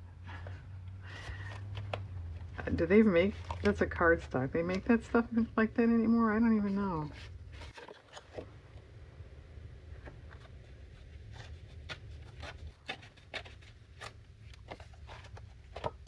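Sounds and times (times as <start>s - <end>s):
paper rustling and tearing: 2.6s - 3.8s, 7.0s - 8.5s, 10.2s - 16.0s.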